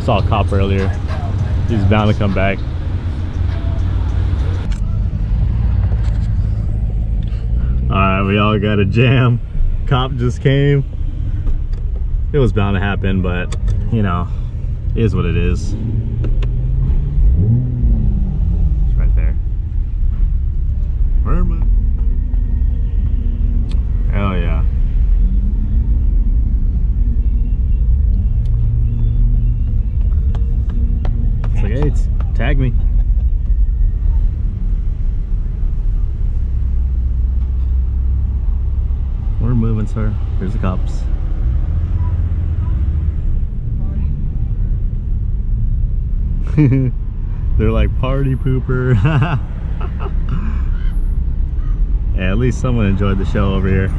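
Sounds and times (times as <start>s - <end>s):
people talking: 0.0s - 2.6s, 7.9s - 10.9s, 12.4s - 14.3s, 15.0s - 15.7s, 19.0s - 19.4s, 21.3s - 21.7s, 24.1s - 24.6s, 31.5s - 32.8s, 39.4s - 41.1s, 47.6s - 49.4s, 52.2s - 53.9s
car rumbling in slow traffic: 0.0s - 53.9s.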